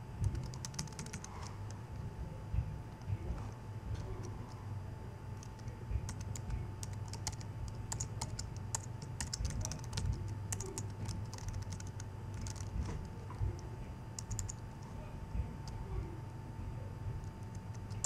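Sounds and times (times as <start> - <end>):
steady low hum: 0.0 - 18.0
keyboard typing clicks: 0.2 - 1.8, 5.4 - 14.7, 17.2 - 18.0.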